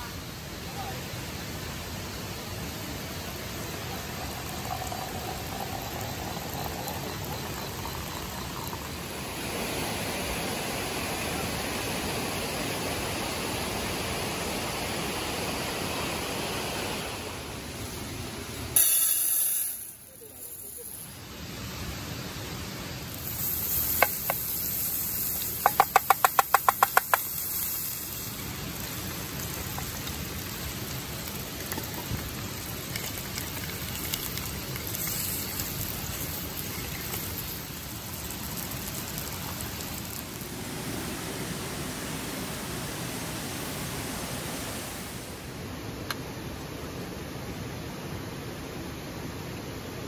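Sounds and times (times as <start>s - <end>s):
sausages sizzling in a pan: 21.5s - 40.6s.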